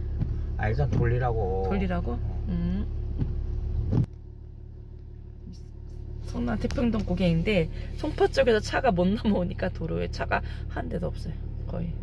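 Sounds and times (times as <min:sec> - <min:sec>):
car driving rumble from inside: 0:00.0 - 0:12.0.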